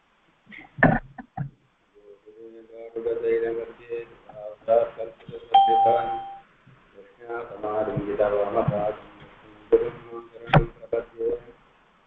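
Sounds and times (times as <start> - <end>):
voices: 0.5 - 6.4, 7.0 - 11.5
electronic beep: 5.6 - 6.4.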